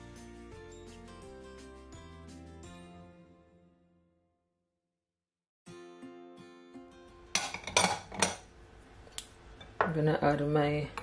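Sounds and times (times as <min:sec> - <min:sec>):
glass bowls and utensils clinking: 0:07.3 - 0:08.4.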